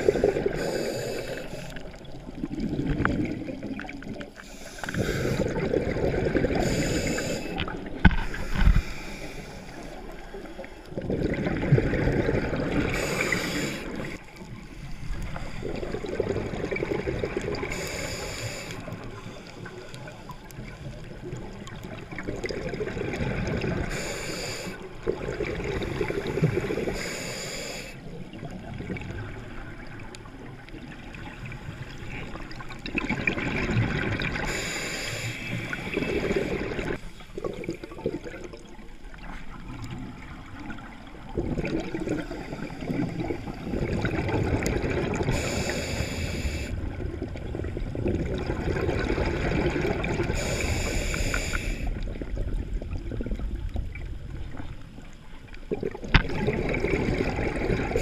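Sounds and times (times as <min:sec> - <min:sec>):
bubbling exhalation underwater: 0:02.3 - 0:04.2, 0:04.9 - 0:06.6, 0:11.0 - 0:14.2, 0:41.2 - 0:45.4, 0:46.8 - 0:50.6, 0:55.7 - 0:58.0.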